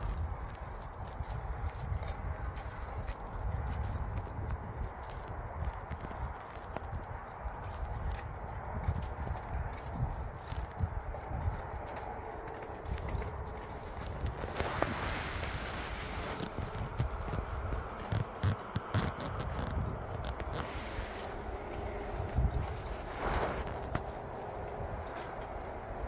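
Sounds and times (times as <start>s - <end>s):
horse hooves on icy snow: 0.0s - 26.0s
rustling hiss: 14.4s - 17.2s, 20.4s - 22.1s.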